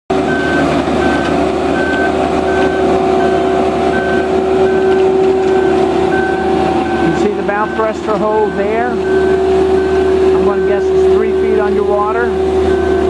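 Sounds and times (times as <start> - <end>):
engine hum: 0.1 - 13.0
warning beeper short beeps: 4.0 - 11.8.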